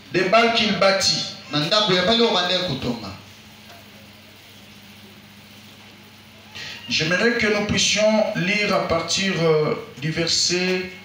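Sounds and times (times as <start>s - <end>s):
low electrical hum: 0.0s - 11.0s
faint hiss: 1.0s - 9.2s.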